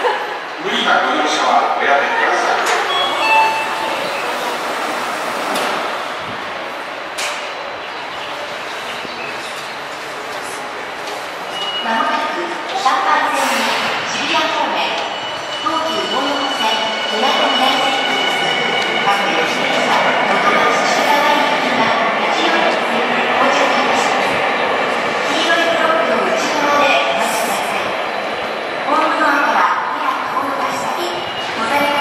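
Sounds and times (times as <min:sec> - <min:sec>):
train doors sliding shut: 0:02.5 - 0:07.6.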